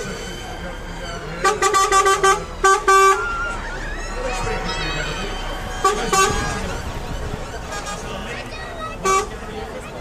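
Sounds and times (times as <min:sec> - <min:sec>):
truck horn toots: 0:00.3 - 0:09.6.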